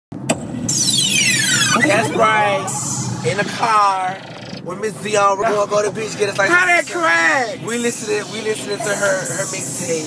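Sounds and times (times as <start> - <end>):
high-pitched descending squeal: 0.7 - 3.6
person speaking: 1.8 - 3.8.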